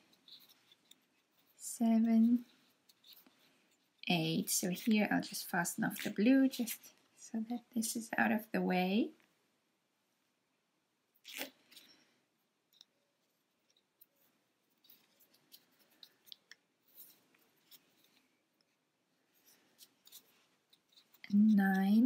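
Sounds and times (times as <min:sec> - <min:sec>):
yarn rustling: 0:13.2 - 0:22.0.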